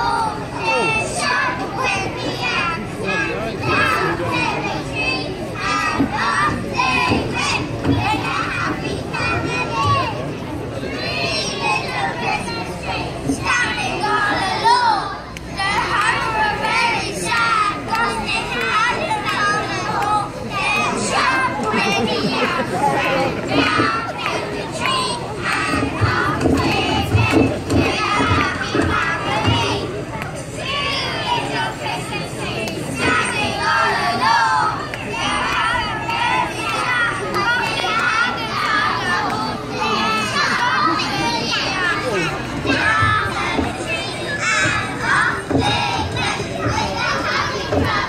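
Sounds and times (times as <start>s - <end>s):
children chattering and calling out: 0.0s - 48.0s
crowd murmuring: 0.0s - 48.0s
low recurring thump: 25.5s - 29.8s, 42.5s - 48.0s.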